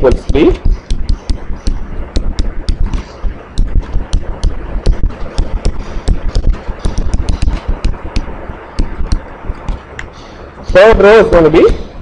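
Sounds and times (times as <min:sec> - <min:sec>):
low thuds: 0:00.0 - 0:10.0
pen tapping on writing surface: 0:00.1 - 0:09.8.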